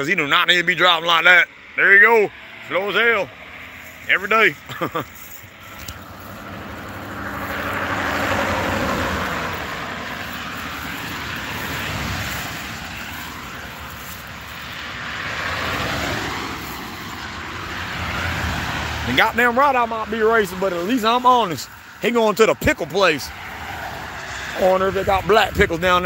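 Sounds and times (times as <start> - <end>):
cars passing on road: 0.0 - 26.0
person laughing: 4.6 - 5.3.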